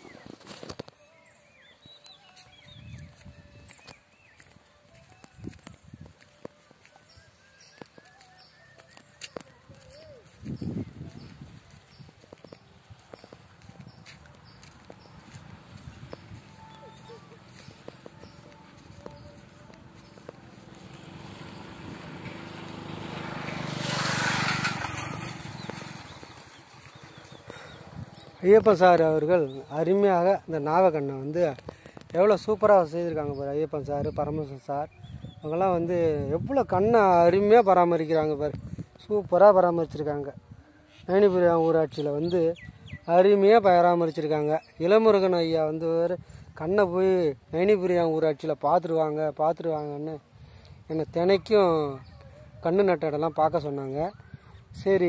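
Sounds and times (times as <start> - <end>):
motor vehicle passing by: 8.9 - 28.7.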